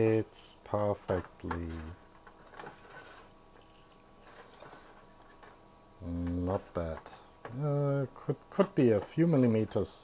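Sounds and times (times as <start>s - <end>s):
plastic tray scraping in metal tray: 1.6s - 3.3s.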